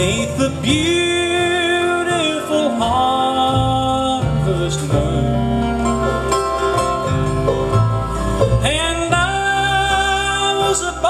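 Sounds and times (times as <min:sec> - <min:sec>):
person singing: 0:00.0 - 0:06.6, 0:08.5 - 0:11.0
banjo: 0:00.0 - 0:11.0
bluegrass band playing a waltz: 0:00.0 - 0:11.0
fiddles: 0:00.0 - 0:11.0.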